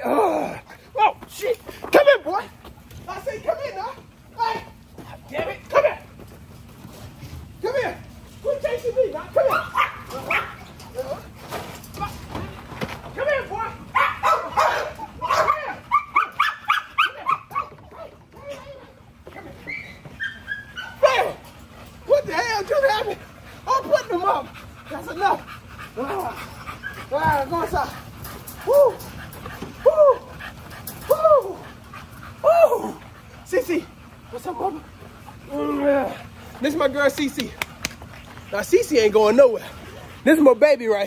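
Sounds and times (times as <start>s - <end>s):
puppy yelping and whimpering: 19.5s - 21.4s.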